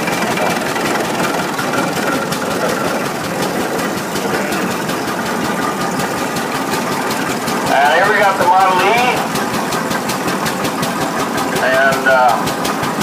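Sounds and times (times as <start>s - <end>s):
tractor engine running: 0.0s - 13.0s.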